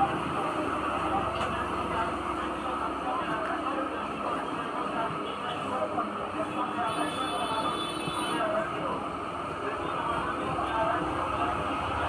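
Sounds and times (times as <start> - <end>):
faint voices: 0.0 - 12.0
steady rumbling background noise: 0.0 - 12.0.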